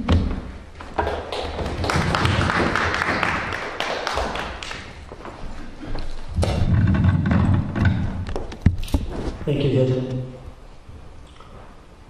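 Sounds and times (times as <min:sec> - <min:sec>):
microphone handling rustling: 0:05.6 - 0:10.1
microphone thumps: 0:06.3 - 0:09.4.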